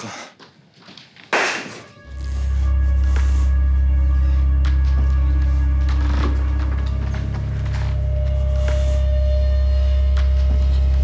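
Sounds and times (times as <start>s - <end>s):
pulsing low drone: 1.9s - 11.0s.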